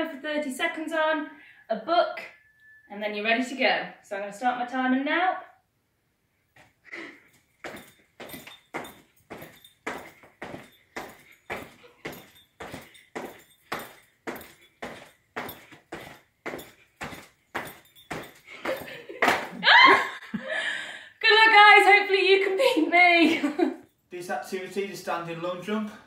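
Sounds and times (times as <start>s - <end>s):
feet landing on tiled floor: 7.3s - 20.0s.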